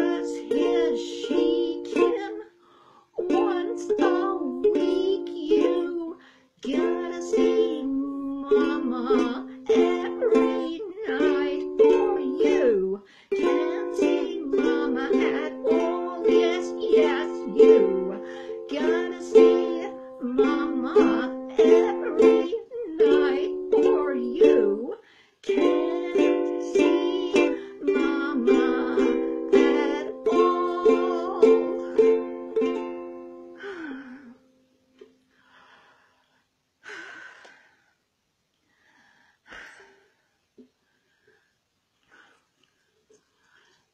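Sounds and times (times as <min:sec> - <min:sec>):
ukulele strumming chords: 0:00.0 - 0:02.5, 0:03.2 - 0:24.9, 0:25.5 - 0:34.0.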